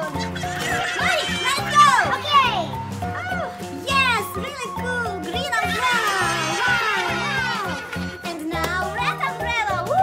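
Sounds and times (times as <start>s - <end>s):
children calling out: 0.0s - 3.5s, 5.4s - 7.9s
background music with held notes: 0.0s - 10.0s.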